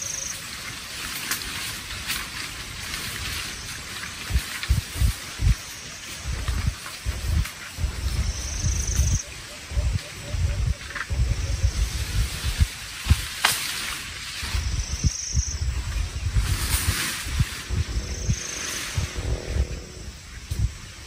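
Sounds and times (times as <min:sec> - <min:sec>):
leaves rustling: 0:00.0 - 0:10.2, 0:10.8 - 0:21.0
wind buffeting microphone: 0:01.7 - 0:21.0
high-pitched trills: 0:17.4 - 0:20.6.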